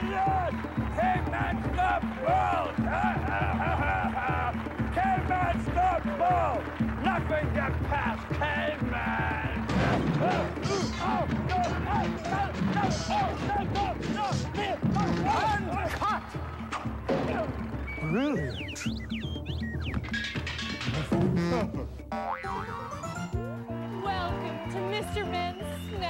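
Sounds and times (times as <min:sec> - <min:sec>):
lively background music: 0:00.0 - 0:26.0.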